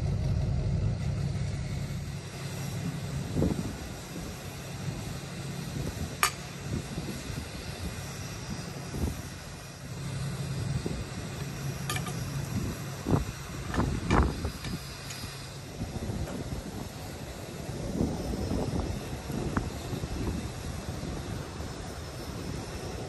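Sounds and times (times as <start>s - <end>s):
low rumble: 0.0s - 4.3s
wind on microphone: 2.7s - 9.4s, 10.5s - 23.0s.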